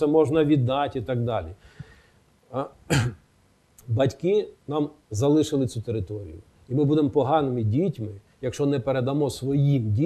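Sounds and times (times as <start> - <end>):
man clearing his throat: 2.9 - 3.2.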